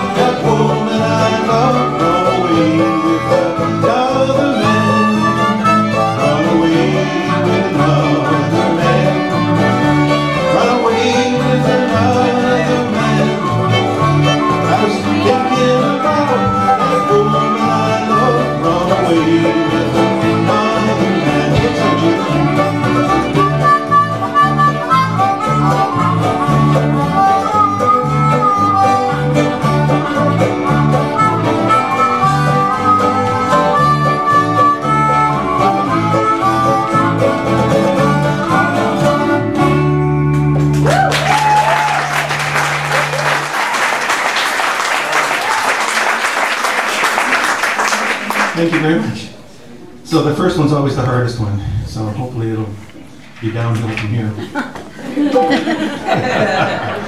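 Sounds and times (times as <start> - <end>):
fiddle: 0.0 - 40.3
harmonica: 0.0 - 40.6
strummed acoustic guitars: 0.0 - 41.0
slide guitar: 0.0 - 43.5
upright bass: 0.0 - 43.5.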